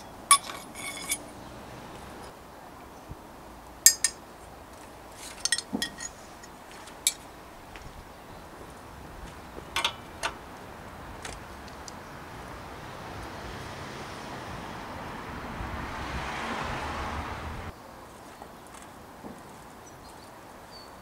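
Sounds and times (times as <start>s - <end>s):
metal bicycle parts clinking: 0.0s - 2.3s, 3.8s - 7.3s, 9.6s - 10.5s.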